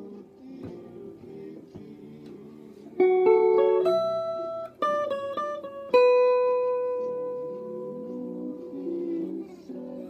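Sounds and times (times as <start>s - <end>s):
guitar plucked melody: 2.7s - 10.0s.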